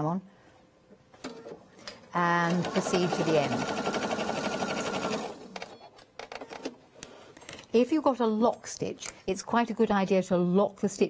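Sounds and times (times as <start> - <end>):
sewing machine stitching: 2.4 - 5.8.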